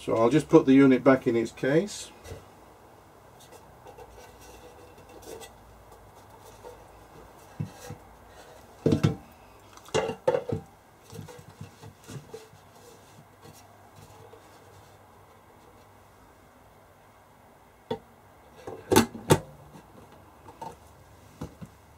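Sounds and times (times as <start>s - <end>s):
knocks and clunks on metal case: 8.8s - 9.2s.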